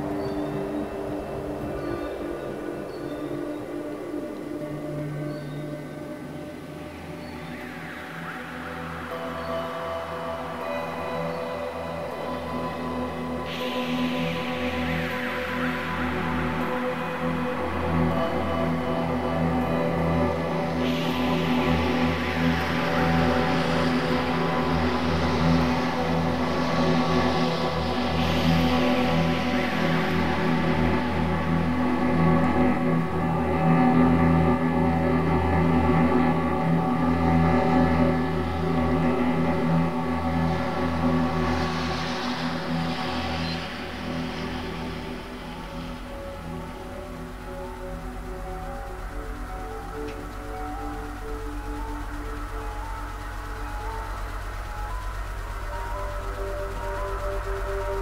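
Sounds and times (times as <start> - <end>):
dense drone of layered tones: 0.0 - 58.0.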